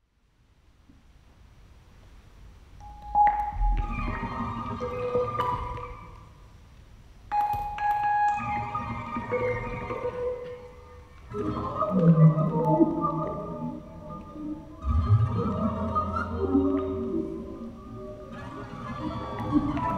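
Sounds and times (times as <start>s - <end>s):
steady electronic tones: 2.8s - 6.3s.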